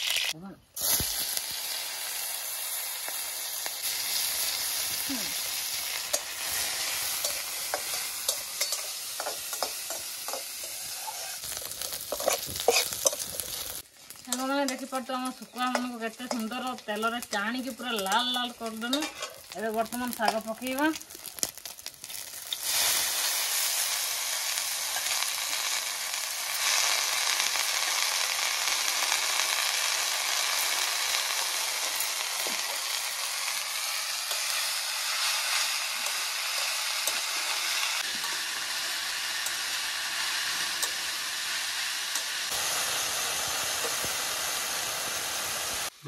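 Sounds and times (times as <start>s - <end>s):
food sizzling in hot oil: 0.0s - 46.0s
steel spatula scraping: 5.9s - 19.6s.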